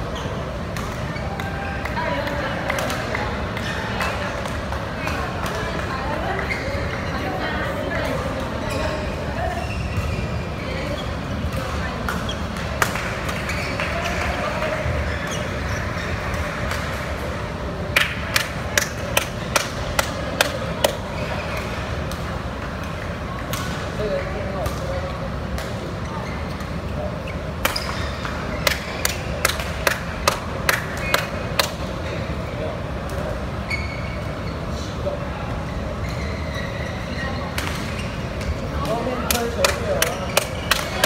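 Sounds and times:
murmur of voices: 0.0s - 41.0s
rackets hitting shuttlecock: 17.9s - 24.0s, 27.6s - 31.9s.

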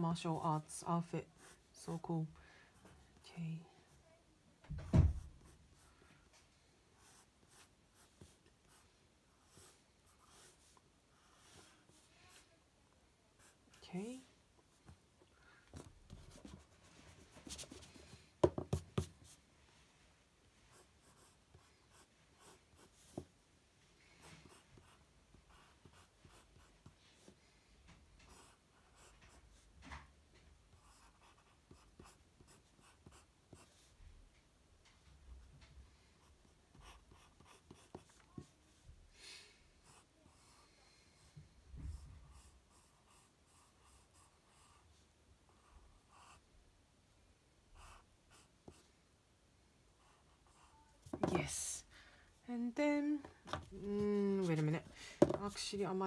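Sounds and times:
pencil scratching on paper: 1.3s - 2.1s, 7.0s - 12.5s, 13.4s - 14.2s, 15.8s - 19.4s, 20.7s - 23.3s, 24.2s - 27.4s, 30.7s - 34.0s, 36.2s - 38.7s, 41.9s - 44.9s, 45.5s - 46.5s, 47.8s - 48.8s, 54.3s - 56.0s
low thump: 4.6s - 5.3s.

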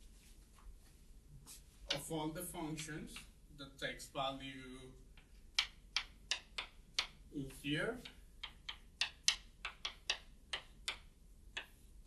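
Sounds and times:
chalk tapping on chalkboard: 5.1s - 12.0s.

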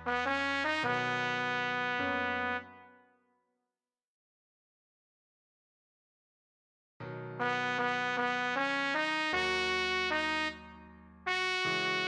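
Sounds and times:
trumpet holding long note: 0.0s - 3.0s, 7.4s - 12.0s.

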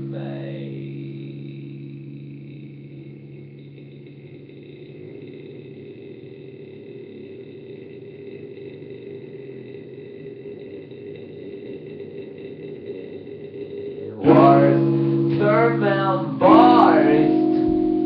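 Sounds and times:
amplifier drone with whine: 0.0s - 18.0s
electric guitar chord: 0.0s - 18.0s.

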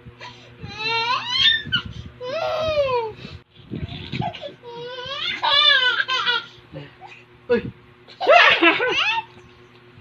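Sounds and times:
little girl squealing: 0.7s - 3.1s.

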